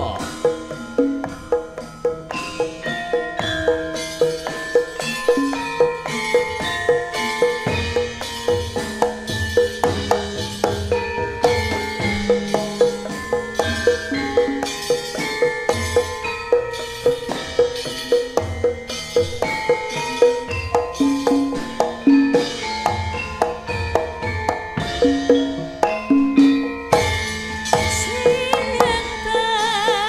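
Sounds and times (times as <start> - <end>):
hand drum strokes: 0.0 - 30.0
metallophones and gongs ringing: 0.0 - 30.0.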